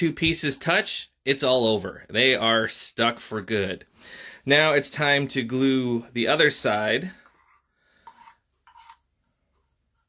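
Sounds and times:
metal screw lid scraping open: 0:07.2 - 0:09.1.

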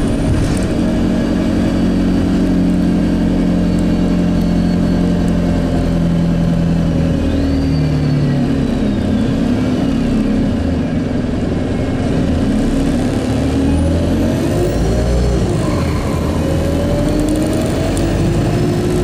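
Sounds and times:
bus engine droning: 0:00.0 - 0:19.0
road noise: 0:00.0 - 0:19.0.

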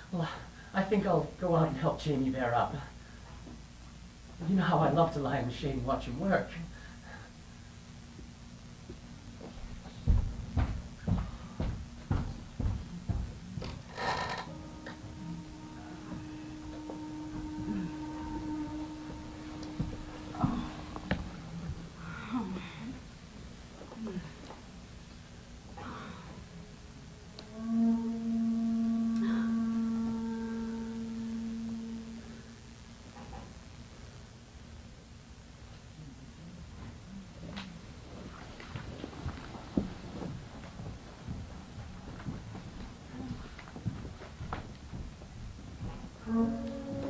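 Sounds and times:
heavy footsteps on stage floor: 0:08.8 - 0:22.0, 0:38.6 - 0:47.0
sustained pitched stage tone: 0:11.4 - 0:34.8, 0:45.8 - 0:47.0.

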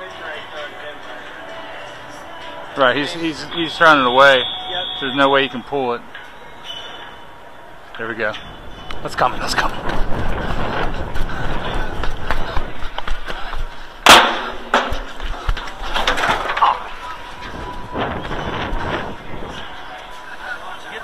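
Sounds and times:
scrambling through metal seats: 0:08.1 - 0:19.8
sharp loud bang: 0:14.0 - 0:14.9.

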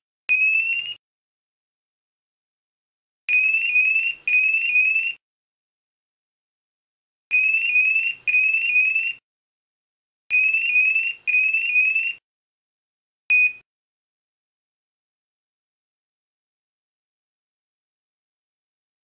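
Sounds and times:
high rising electronic alarm chirps: 0:03.3 - 0:05.2, 0:07.3 - 0:09.2, 0:10.3 - 0:12.2.

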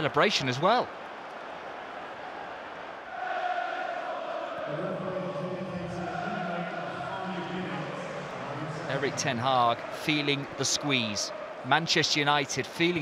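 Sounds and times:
crowd noise: 0:00.0 - 0:13.0
crowd singing a chant: 0:03.1 - 0:04.8.

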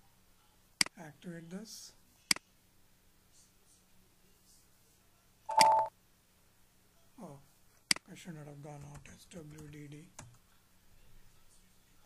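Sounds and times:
computer beep: 0:05.5 - 0:05.9.

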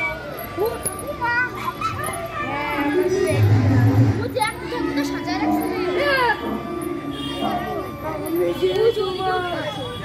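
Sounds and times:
children talking and calling out: 0:00.0 - 0:10.0.

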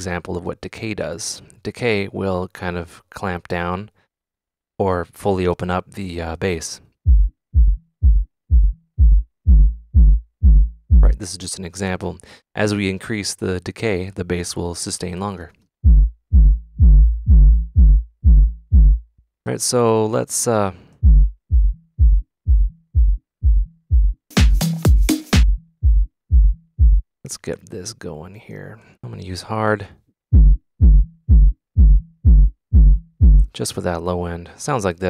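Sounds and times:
sub-bass kick tone: 0:07.1 - 0:11.2, 0:15.8 - 0:19.2, 0:21.0 - 0:27.1, 0:30.3 - 0:33.5.

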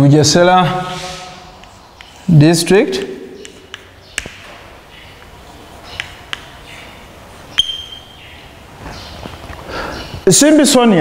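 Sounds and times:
chalk tapping on blackboard: 0:01.6 - 0:04.4, 0:05.2 - 0:06.7.

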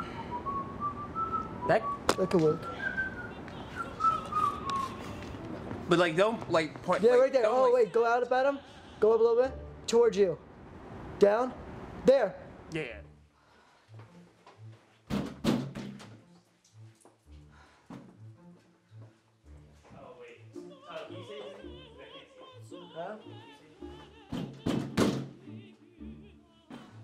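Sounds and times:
person whistling: 0:00.0 - 0:05.2.

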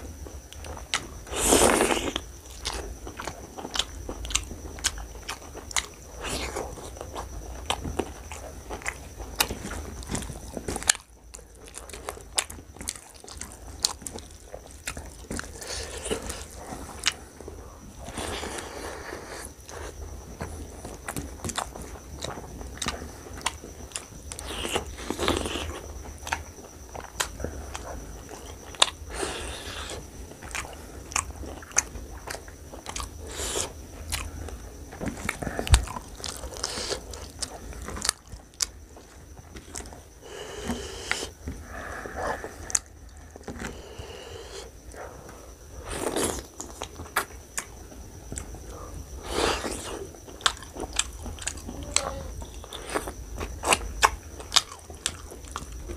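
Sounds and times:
chewing and lip smacking: 0:00.4 - 0:41.4, 0:42.0 - 0:55.9.

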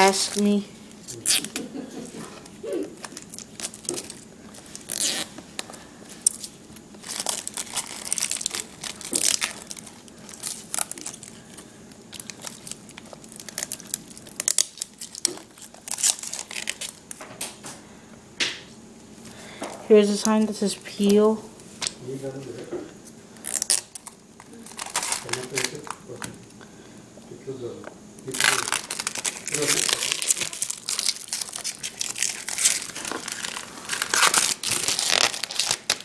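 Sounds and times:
plastic film tearing: 0:00.0 - 0:01.7, 0:03.0 - 0:05.4, 0:06.2 - 0:17.2, 0:23.4 - 0:26.0, 0:28.3 - 0:36.0
plastic packaging crinkling: 0:00.0 - 0:17.2, 0:23.4 - 0:26.3, 0:28.2 - 0:36.0.

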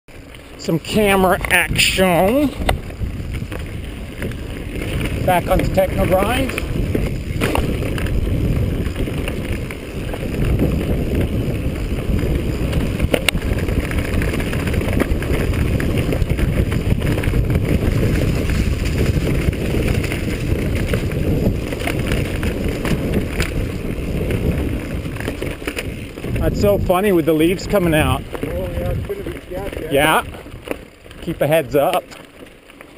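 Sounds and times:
mountain bike rattling on dirt: 0:00.1 - 0:32.9
wind buffeting microphone: 0:00.3 - 0:32.0
bike knocking over bumps: 0:00.8 - 0:32.9.

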